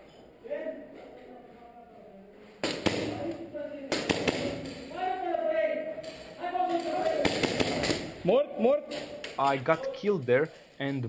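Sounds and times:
airsoft guns firing: 0:02.6 - 0:05.0, 0:06.0 - 0:08.2
people shouting: 0:06.4 - 0:08.0.

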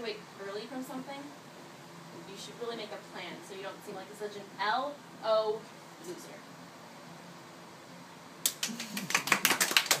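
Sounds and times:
small group clapping: 0:08.4 - 0:10.0.

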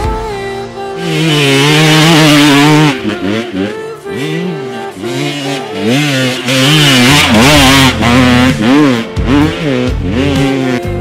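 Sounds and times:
dirt bike engine revving: 0:00.9 - 0:11.0.

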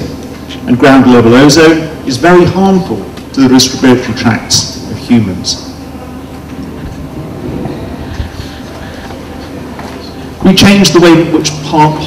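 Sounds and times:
faint hum: 0:00.0 - 0:12.0
low room rumble: 0:00.0 - 0:12.0.

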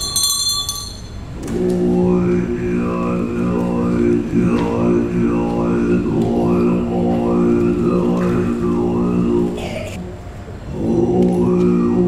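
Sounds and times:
deep droning chant: 0:01.2 - 0:12.0.

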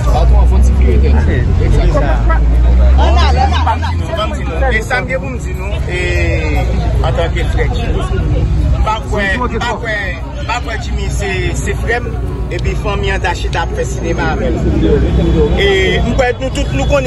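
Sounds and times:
man talking: 0:00.0 - 0:17.0
other voices: 0:00.0 - 0:17.0.

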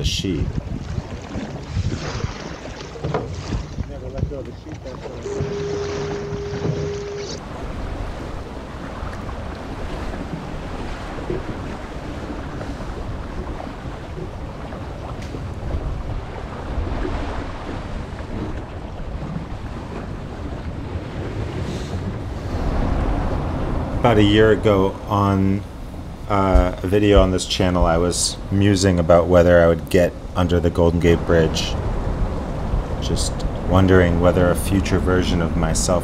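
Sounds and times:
water splashing along hull: 0:00.0 - 0:36.0
wind buffeting microphone: 0:00.0 - 0:36.0
short steady tone: 0:05.2 - 0:07.4.

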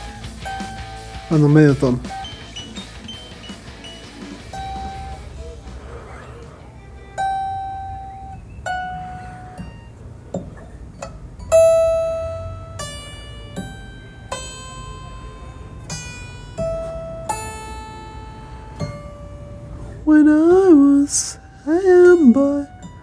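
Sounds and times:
electric guitar single notes: 0:00.0 - 0:05.6, 0:06.6 - 0:23.0.

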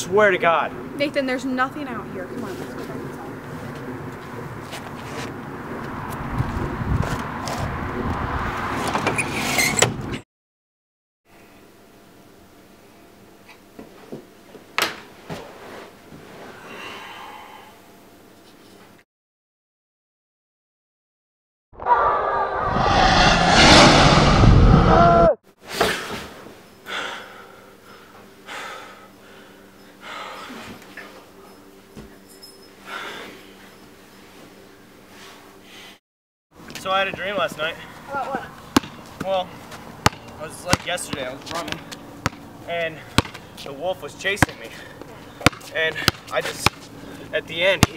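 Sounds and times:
rushing noise with held tones: 0:22.2 - 0:25.3
heavy breathing: 0:26.9 - 0:30.8.

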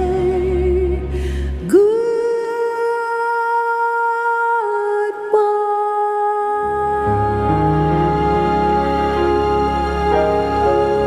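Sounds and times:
woman singing sustained note: 0:05.4 - 0:11.0
low instrumental accompaniment: 0:06.7 - 0:11.0.

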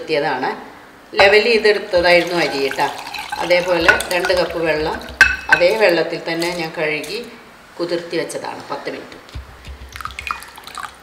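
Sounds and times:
woman talking: 0:00.0 - 0:09.2
water pouring into bowl: 0:02.0 - 0:05.4, 0:09.9 - 0:11.0
dish knocking against glass: 0:02.0 - 0:05.8.

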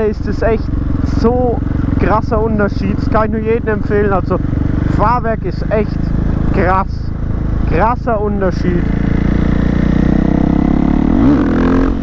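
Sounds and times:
motorcycle engine revving: 0:00.0 - 0:12.0
motorcycle engine running: 0:00.0 - 0:12.0.

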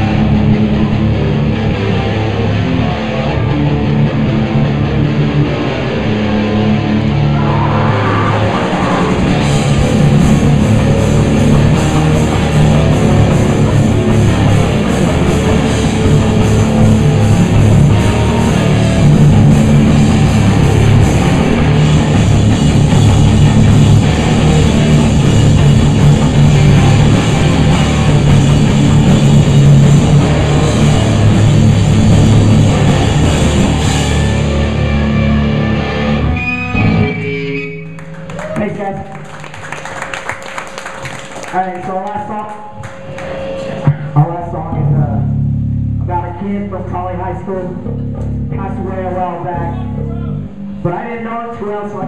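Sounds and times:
live rock band playing: 0:00.0 - 0:41.6
guitar notes: 0:00.0 - 0:50.9.

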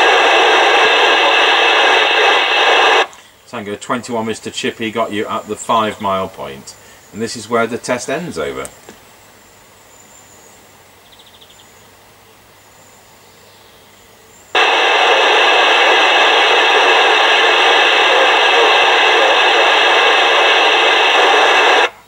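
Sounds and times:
radio static hiss: 0:00.0 - 0:10.0, 0:14.4 - 0:22.0.

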